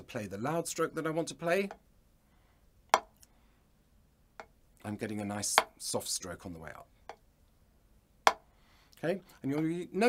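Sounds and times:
drumstick striking practice pad: 2.9s - 3.2s, 8.2s - 8.5s.

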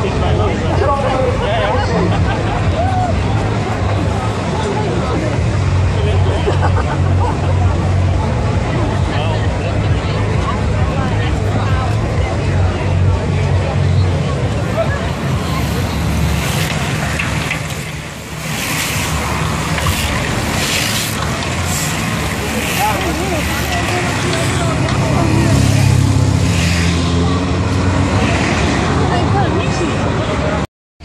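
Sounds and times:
cyclists passing at speed: 0.0s - 30.6s
crowd talking: 0.0s - 30.7s.

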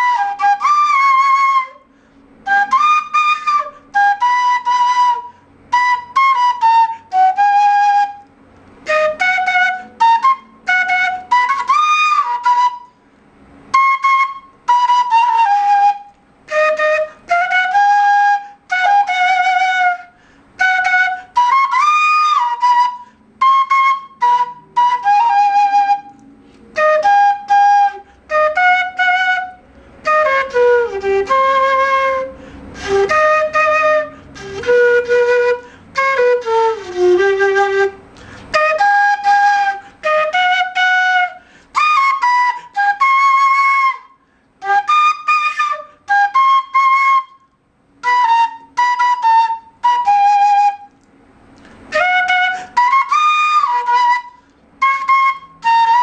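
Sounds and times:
solo cane flute melody: 0.0s - 56.0s.

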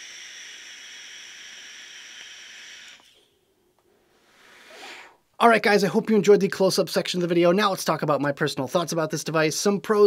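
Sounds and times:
vape draw hiss: 0.0s - 3.4s, 4.2s - 5.2s.

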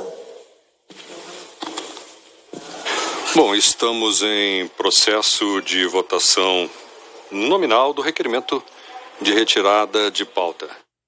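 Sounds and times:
broadcast feed hiss: 0.0s - 11.0s.

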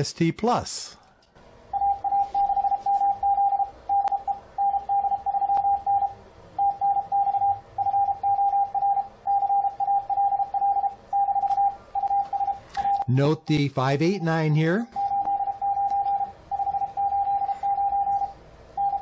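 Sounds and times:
morse code beeps: 1.7s - 13.2s, 14.0s - 19.0s.

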